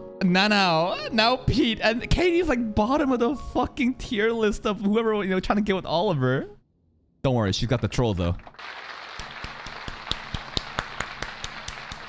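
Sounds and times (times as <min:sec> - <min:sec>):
hands clapping in rhythm: 0:07.7 - 0:12.0.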